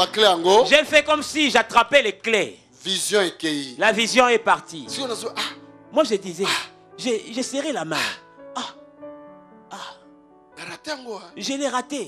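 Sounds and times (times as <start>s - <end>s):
soft church keyboard chords: 0.0s - 12.0s
person clearing throat: 8.0s - 8.8s, 9.7s - 10.0s.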